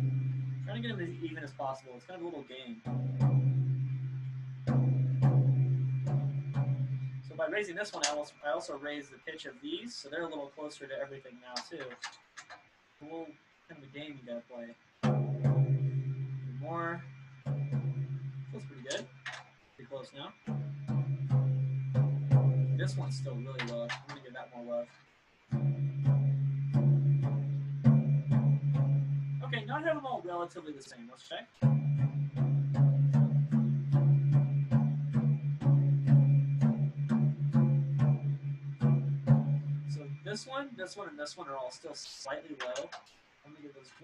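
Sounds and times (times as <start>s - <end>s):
drumstick tapping floor tom: 0.0s - 1.7s, 2.8s - 8.2s, 15.0s - 19.5s, 20.3s - 24.4s, 25.5s - 30.0s, 31.6s - 40.6s.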